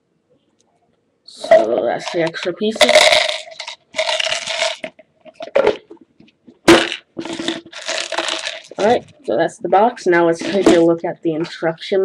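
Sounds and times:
plastic scraping and rustling: 0:01.4 - 0:11.6.

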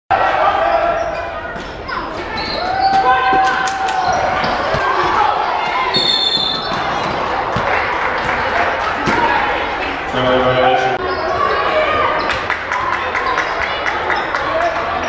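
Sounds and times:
sneaker squeaks: 0:00.6 - 0:07.7, 0:10.8 - 0:12.5
people shouting: 0:02.5 - 0:07.8.

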